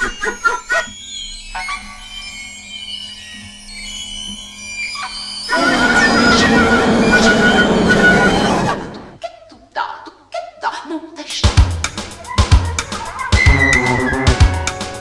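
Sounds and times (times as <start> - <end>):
dense burst of noise: 5.5 - 9.2
sliding tones: 5.5 - 9.2.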